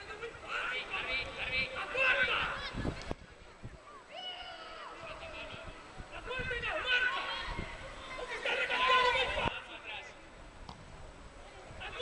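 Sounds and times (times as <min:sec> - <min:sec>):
long high shout: 0:04.1 - 0:05.0, 0:06.4 - 0:09.5
children calling out: 0:06.8 - 0:09.5.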